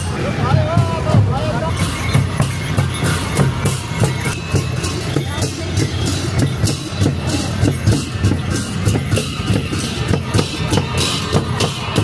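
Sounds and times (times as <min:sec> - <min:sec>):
brass cymbal clashes: 0:00.0 - 0:12.0
drums playing processional beat: 0:00.0 - 0:12.0.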